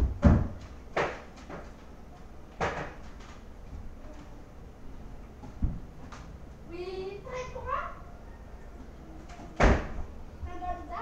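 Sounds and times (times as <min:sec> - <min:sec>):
loud thump: 0:09.6 - 0:10.0.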